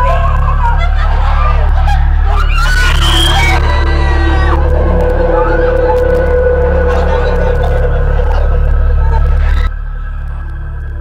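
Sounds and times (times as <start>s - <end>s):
young people shrieking and yelping: 0.0s - 9.7s
low droning soundtrack: 0.0s - 11.0s.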